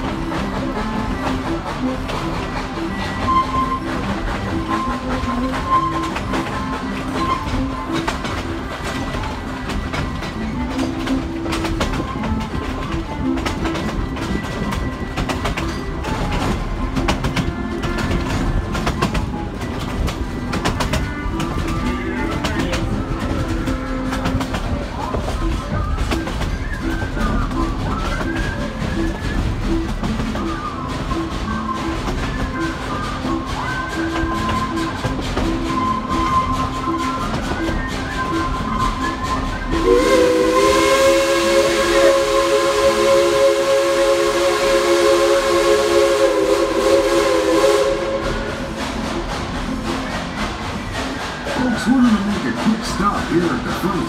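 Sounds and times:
music: 0:00.0 - 0:54.0
train rumbling on track: 0:00.0 - 0:54.0
wheels clicking over rail joints: 0:00.0 - 0:54.0.

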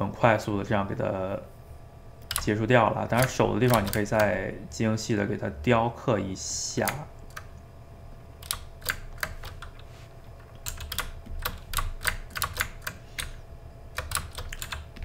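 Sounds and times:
faint low hum: 0:00.0 - 0:15.0
computer keyboard typing: 0:02.2 - 0:02.5, 0:03.1 - 0:04.4, 0:06.8 - 0:07.5, 0:08.4 - 0:09.8, 0:10.4 - 0:15.0.

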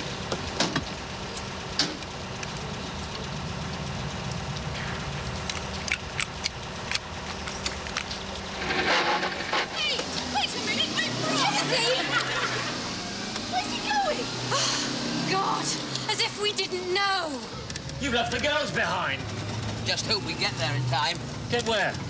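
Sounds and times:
vehicle engine idling: 0:00.0 - 0:22.0
women shouting: 0:09.7 - 0:12.6, 0:13.5 - 0:17.5.

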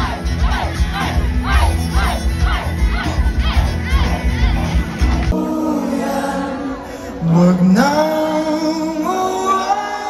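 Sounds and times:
live dance music with heavy bass: 0:00.0 - 0:05.3
crowd shouting along: 0:00.0 - 0:07.2.

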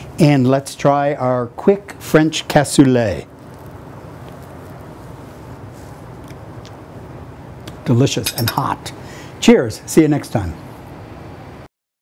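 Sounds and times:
low room hum: 0:00.0 - 0:11.7
man chewing food: 0:03.4 - 0:05.0.

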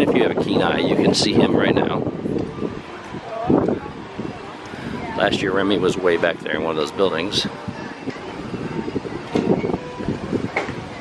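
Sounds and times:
people walking and talking: 0:00.0 - 0:11.0
wind rumbling on microphone: 0:00.0 - 0:11.0.

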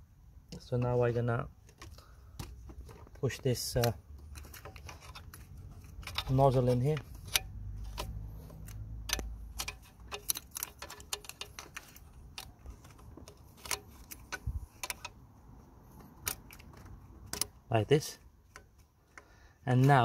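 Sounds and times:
metallic clicks of hose fitting: 0:01.6 - 0:15.2, 0:18.4 - 0:20.0.

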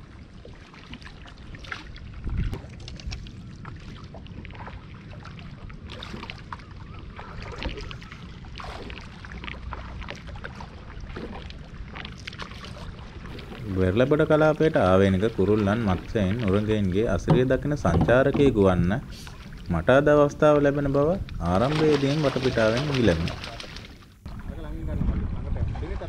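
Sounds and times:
paddle splashing in water: 0:00.0 - 0:19.8, 0:21.3 - 0:24.6
water lapping against hull: 0:00.0 - 0:26.0.

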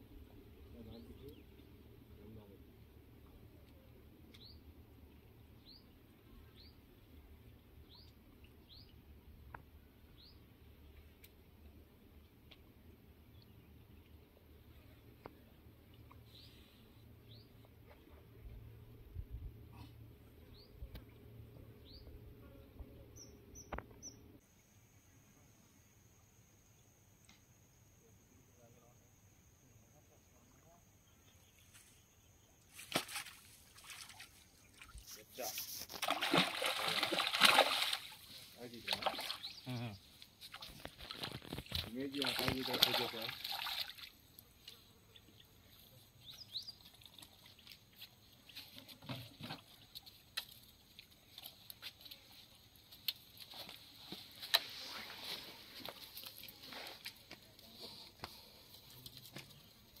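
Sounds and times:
fish thrashing and splashing: 0:35.8 - 0:38.3, 0:40.8 - 0:44.1.

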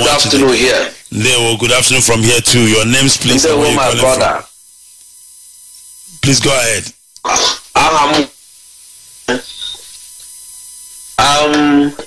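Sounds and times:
faint phone line hiss: 0:08.5 - 0:11.4.

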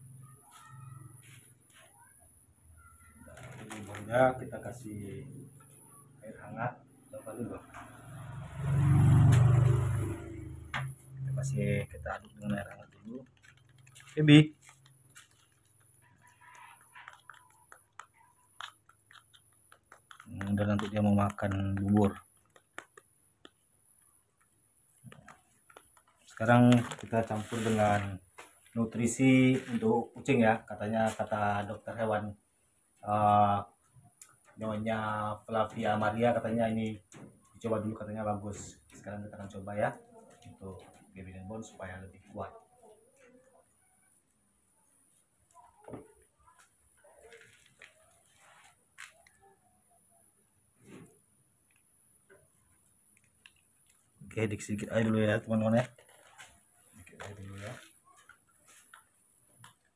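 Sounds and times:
foil pouch crinkling: 0:03.3 - 0:04.1, 0:12.3 - 0:23.2, 0:25.6 - 0:28.0, 0:47.2 - 0:49.4, 0:55.0 - 0:59.1.

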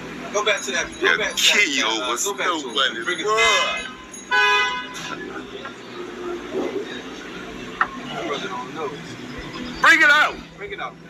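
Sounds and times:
street background noise: 0:00.0 - 0:11.0
car horn blast: 0:03.4 - 0:05.1.

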